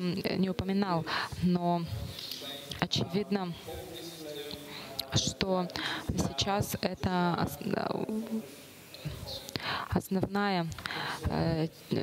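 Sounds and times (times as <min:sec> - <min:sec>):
person saying uh: 0:07.4 - 0:09.7.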